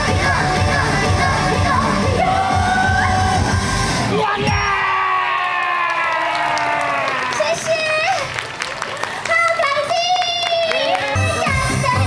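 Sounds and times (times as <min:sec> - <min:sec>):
pop song sung live: 0:00.0 - 0:03.9
audience whooping: 0:04.4 - 0:07.6.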